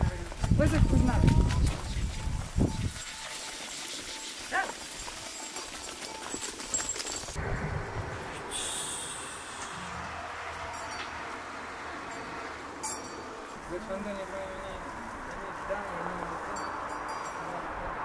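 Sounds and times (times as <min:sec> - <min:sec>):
flock moving on stony path: 0:00.0 - 0:07.4, 0:10.5 - 0:17.6.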